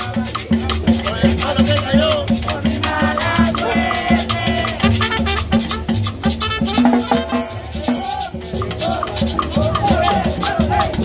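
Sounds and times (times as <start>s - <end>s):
low repeating beat: 0.0s - 11.0s
metal shaker rhythm: 0.0s - 11.0s
trumpet melody: 3.6s - 8.3s.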